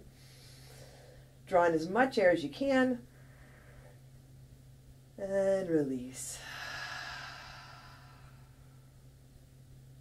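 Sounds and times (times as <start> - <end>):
breathy sigh: 6.3 - 8.8.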